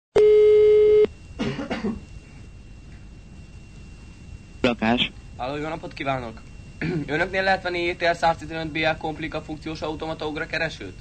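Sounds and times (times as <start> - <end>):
telephone ringing tone beep: 0.2 - 1.1.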